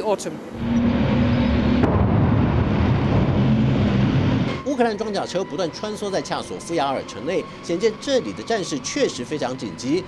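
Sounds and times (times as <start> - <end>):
vehicle engine rumbling: 0.5 - 10.0.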